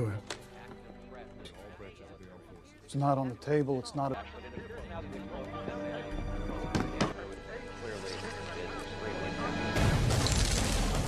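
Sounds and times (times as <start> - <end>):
tense film score: 0.0 - 11.0.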